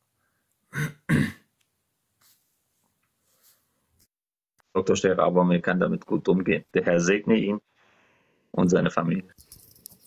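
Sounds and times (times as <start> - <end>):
man clearing his throat: 0.7 - 1.5.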